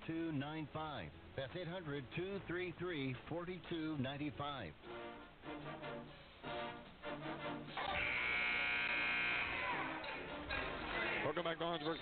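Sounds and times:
arena horn buzz: 0:07.8 - 0:11.3.

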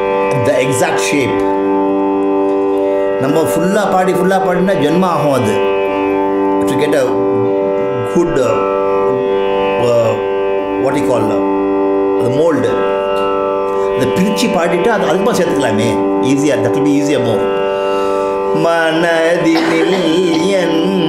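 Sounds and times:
tanpura drone: 0:00.0 - 0:21.0
man singing ornamented phrases: 0:18.5 - 0:21.0.

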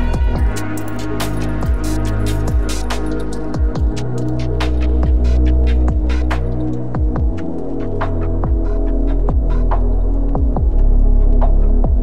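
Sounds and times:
deep sub-bass: 0:00.0 - 0:12.0.

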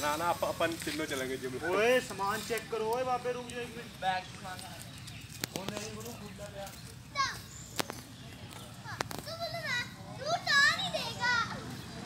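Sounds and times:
children calling and squealing: 0:06.8 - 0:12.0.

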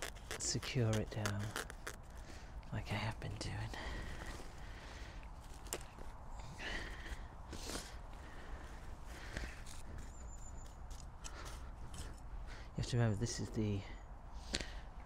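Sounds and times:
plastic membrane rustling and scraping: 0:00.0 - 0:02.3.

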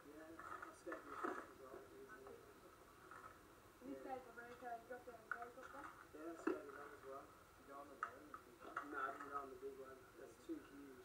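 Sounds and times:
talking through television speaker: 0:00.0 - 0:11.0.

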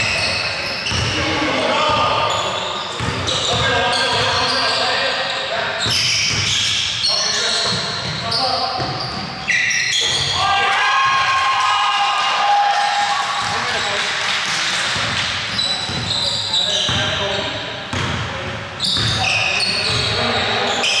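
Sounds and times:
sneakers squeaking on floor: 0:00.0 - 0:10.4, 0:15.0 - 0:21.0
basketball bouncing: 0:00.8 - 0:01.2, 0:15.0 - 0:16.1, 0:17.9 - 0:18.3, 0:19.0 - 0:19.2.

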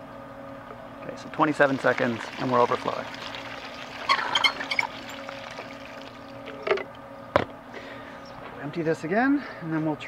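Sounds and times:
low steady hum: 0:00.0 - 0:10.0
water splashing from a hose: 0:01.6 - 0:06.4.

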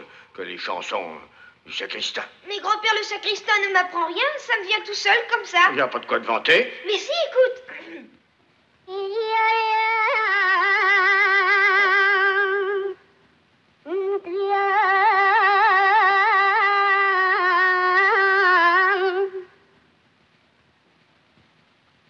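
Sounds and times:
boy singing with vibrato: 0:02.4 - 0:05.8, 0:08.8 - 0:13.2, 0:13.8 - 0:19.8.

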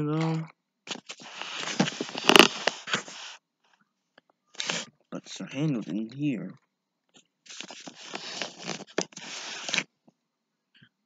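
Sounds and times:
cloth and paper rustling: 0:00.0 - 0:03.4, 0:07.5 - 0:09.9.

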